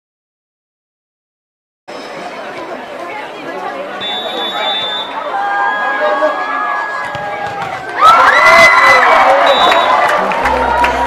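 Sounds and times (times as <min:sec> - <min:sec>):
crowd shouting and cheering: 0:01.9 - 0:11.0.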